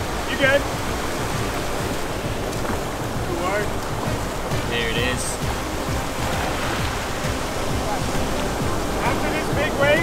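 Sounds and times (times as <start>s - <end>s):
ocean surf breaking: 0.0s - 10.0s.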